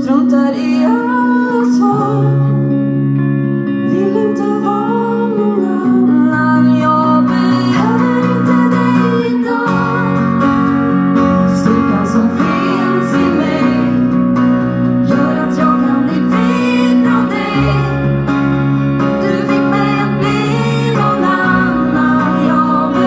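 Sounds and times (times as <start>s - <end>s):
woman singing: 0.0s - 2.6s, 3.8s - 10.4s, 11.4s - 14.1s, 15.0s - 18.3s, 19.0s - 23.0s
guitars and band playing: 0.0s - 23.0s.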